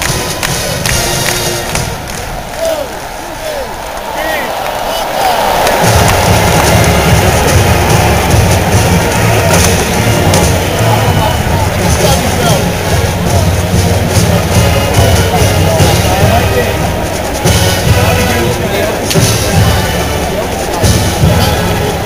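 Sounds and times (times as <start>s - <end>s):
crowd noise: 0.0s - 22.0s
marching band playing: 0.0s - 22.0s
low brass bass line: 5.8s - 22.0s.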